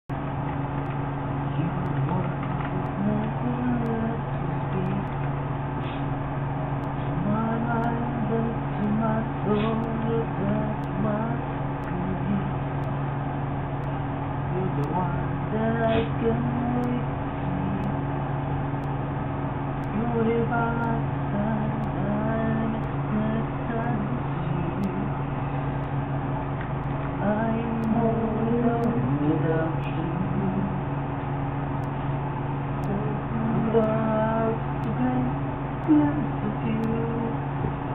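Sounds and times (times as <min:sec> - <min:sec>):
steady low hum: 0:00.0 - 0:37.9
man humming a melody: 0:07.1 - 0:12.6, 0:14.6 - 0:18.0, 0:32.8 - 0:37.4.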